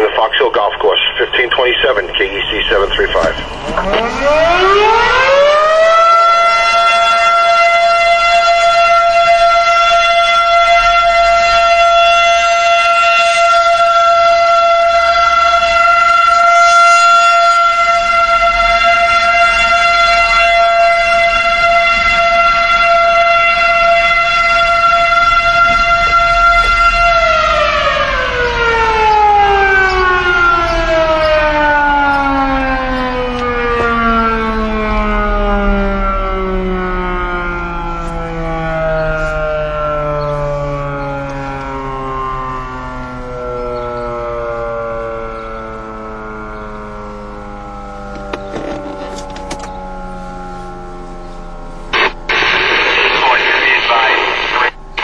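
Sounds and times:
motor-driven fire siren: 0:00.0 - 0:55.0.

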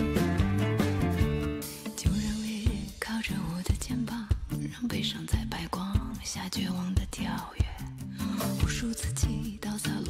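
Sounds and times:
bass notes: 0:00.0 - 0:04.6
woman singing into microphone: 0:01.9 - 0:10.0.

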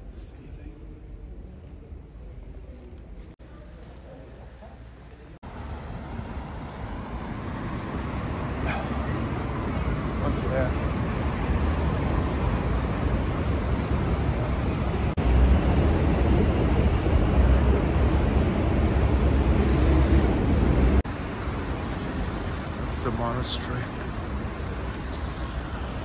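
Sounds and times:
distant traffic: 0:03.4 - 0:26.0.

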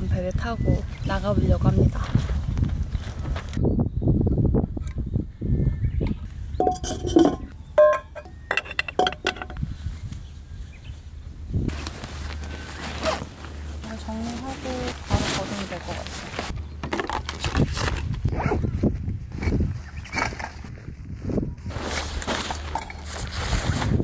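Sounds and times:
metal cookware clinking: 0:06.6 - 0:09.6
rustling: 0:11.7 - 0:18.2, 0:21.6 - 0:24.0.

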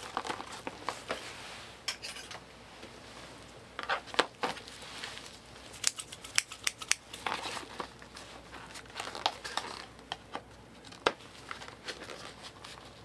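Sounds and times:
wrapper crinkling: 0:00.0 - 0:01.2, 0:04.1 - 0:10.1
metal scissors snipping: 0:05.8 - 0:07.0.

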